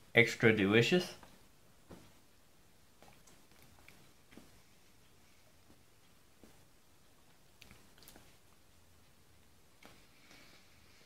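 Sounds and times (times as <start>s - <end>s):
person chewing: 7.5s - 8.4s.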